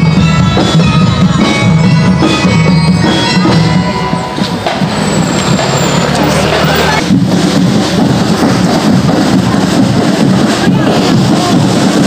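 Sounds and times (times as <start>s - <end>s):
drums: 0.0s - 12.0s
marching band playing: 0.0s - 12.0s
street noise: 0.0s - 12.0s.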